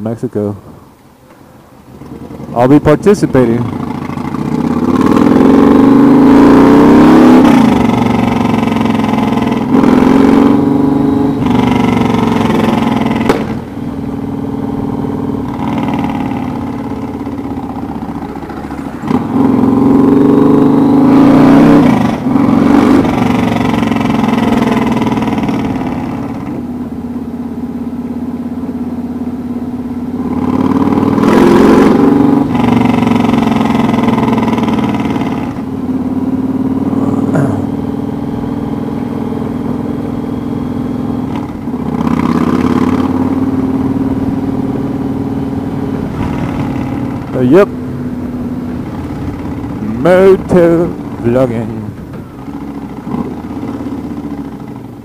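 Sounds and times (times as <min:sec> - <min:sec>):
motorcycle engine accelerating: 0:01.8 - 0:55.0.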